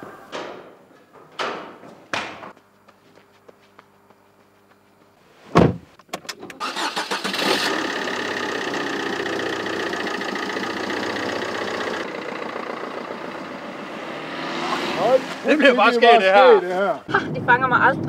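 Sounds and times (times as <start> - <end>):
car door shutting: 5.5 - 5.9
car engine starting and idling: 6.3 - 15.8.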